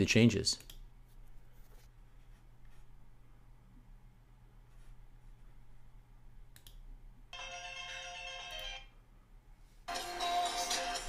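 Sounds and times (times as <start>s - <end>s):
promo video music: 9.9s - 11.0s.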